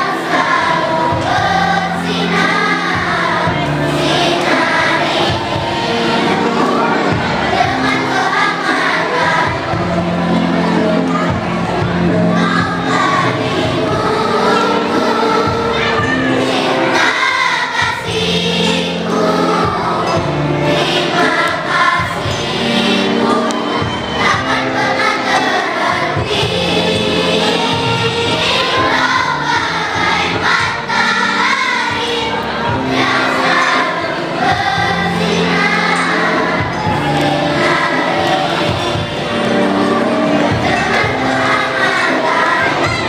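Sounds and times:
children's choir singing: 0:00.0 - 0:43.0.

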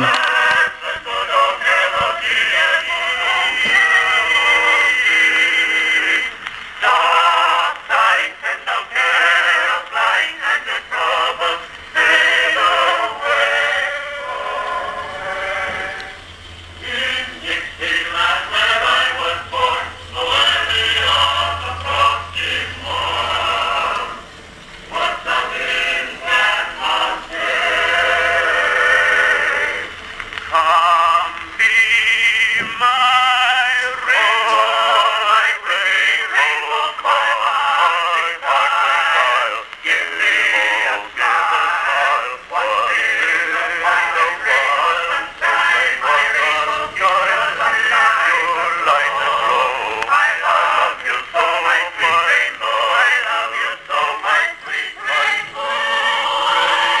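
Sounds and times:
male vocal quartet singing on phonograph: 0:00.0 - 0:57.0.

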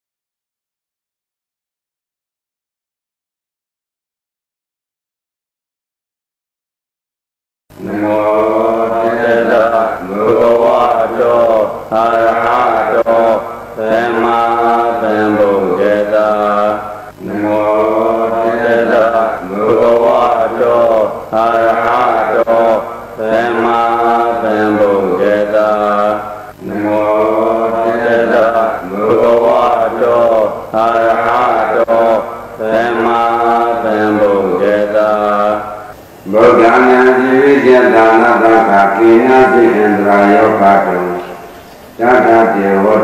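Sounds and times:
man chanting: 0:07.7 - 0:43.0.

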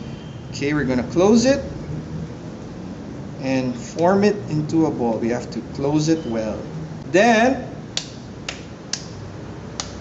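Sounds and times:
hands slapping raw meat: 0:09.8 - 0:10.0.

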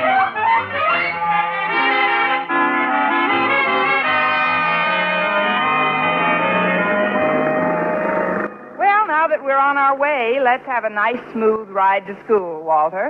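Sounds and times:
radio drama music bridge: 0:00.0 - 0:11.6.

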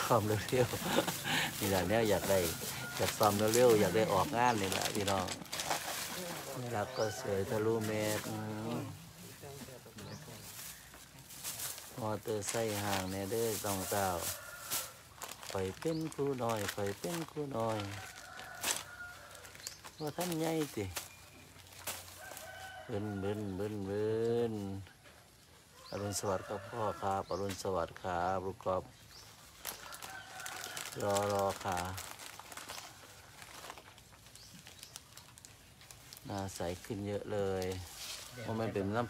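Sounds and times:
rooster crowing: 0:00.9 - 0:04.3.

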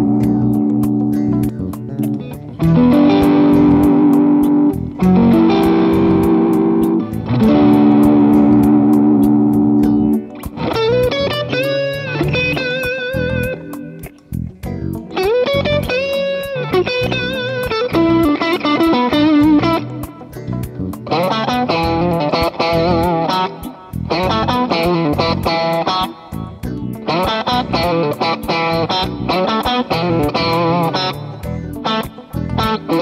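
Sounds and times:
overdriven electric guitar: 0:00.0 - 0:33.0.

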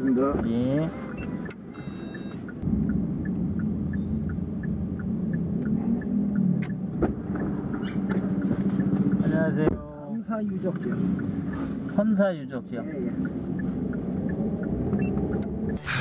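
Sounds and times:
turn indicator ticking: 0:00.0 - 0:15.8
car engine and road hum: 0:00.0 - 0:16.0
short high electronic beep: 0:01.2 - 0:02.4.

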